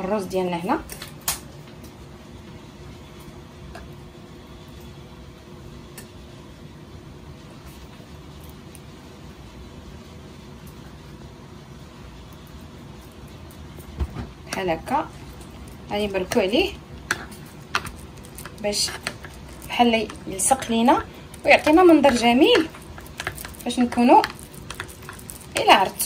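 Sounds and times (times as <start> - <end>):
fan humming: 0.0 - 26.0.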